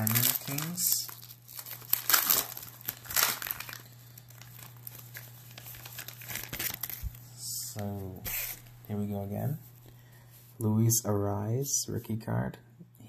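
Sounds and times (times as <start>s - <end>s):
wrapper tearing and crinkling: 0.0s - 7.2s.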